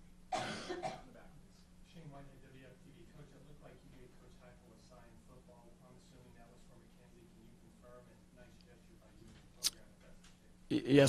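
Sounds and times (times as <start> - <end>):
person coughing: 0.3 - 1.1.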